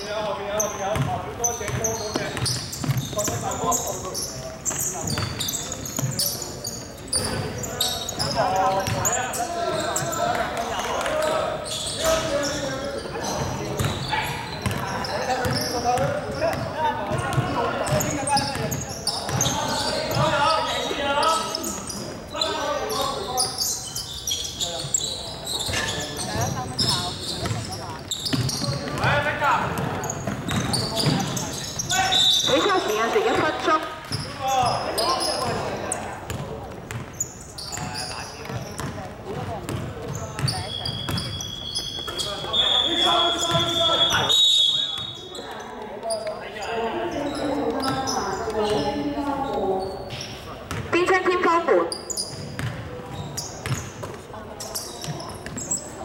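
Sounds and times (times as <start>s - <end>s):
basketball bouncing on hardwood: 36.3s - 37.1s, 52.4s - 52.8s
echoing voices: 41.7s - 52.2s.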